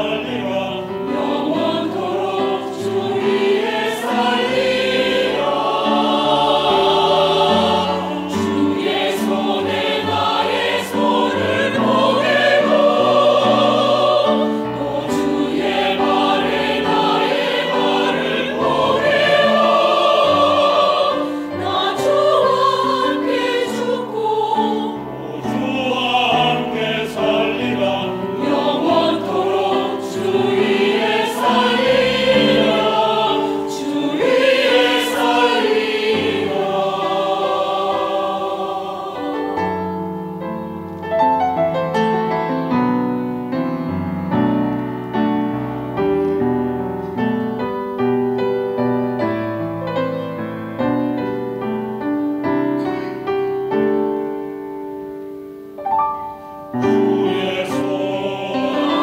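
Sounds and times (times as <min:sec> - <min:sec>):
church choir singing a hymn: 0:00.0 - 0:59.0.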